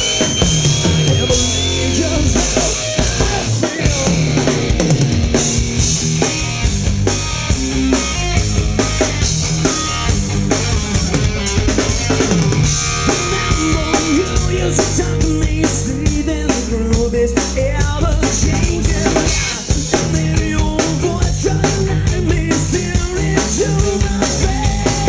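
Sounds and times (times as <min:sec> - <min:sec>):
drum kit: 0:00.0 - 0:25.0
electric bass: 0:00.0 - 0:25.0
electric guitar: 0:00.0 - 0:25.0.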